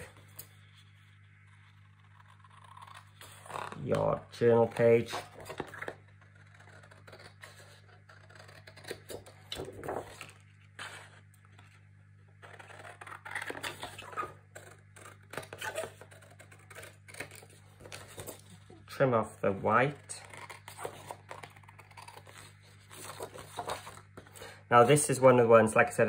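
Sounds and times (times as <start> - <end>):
faint low hum: 0.0 - 26.0
paper rustling: 8.3 - 11.7, 20.4 - 24.5.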